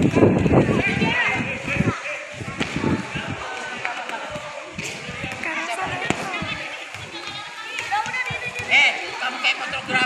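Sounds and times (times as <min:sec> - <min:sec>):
young voices chattering: 0:00.0 - 0:10.0.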